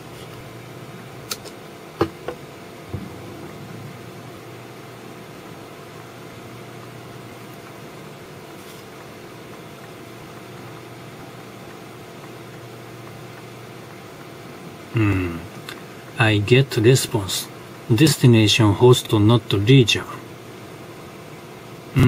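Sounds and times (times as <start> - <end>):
machine hum: 0.0 - 22.0.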